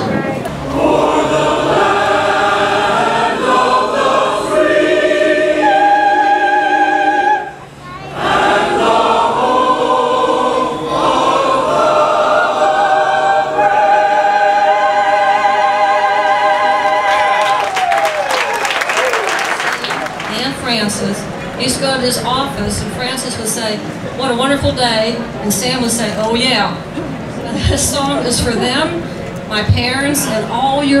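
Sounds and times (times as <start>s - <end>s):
mixed choir singing held chords: 0.0s - 18.3s.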